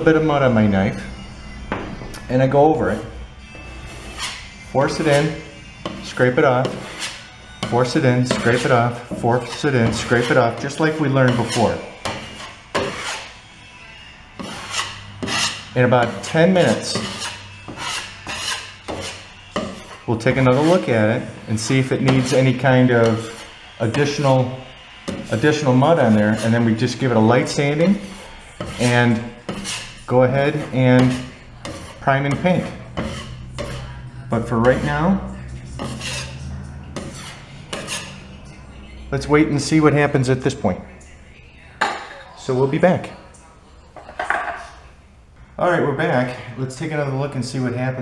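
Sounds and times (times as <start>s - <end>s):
drywall knife scraping: 2.7s - 13.4s, 14.4s - 36.4s, 37.0s - 38.3s.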